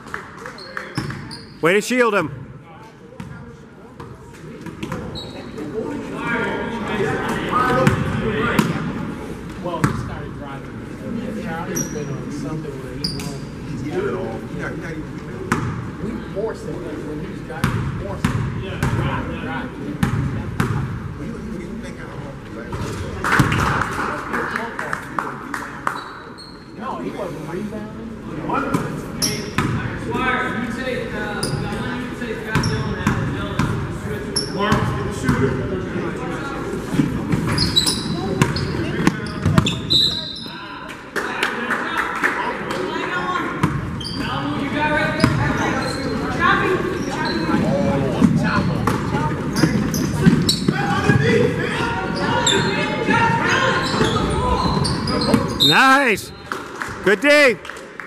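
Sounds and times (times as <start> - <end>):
voices echoing in gym: 0.0 - 58.0.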